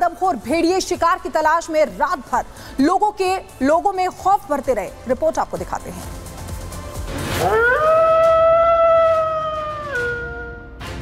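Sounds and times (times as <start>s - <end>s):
wolf howling: 7.4s - 10.6s.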